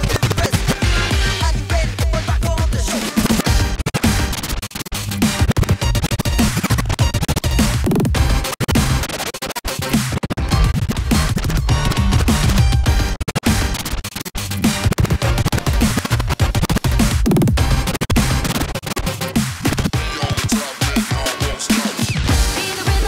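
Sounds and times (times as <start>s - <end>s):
heavy bass-driven beat: 0.0s - 23.0s
record scratching: 0.0s - 23.0s.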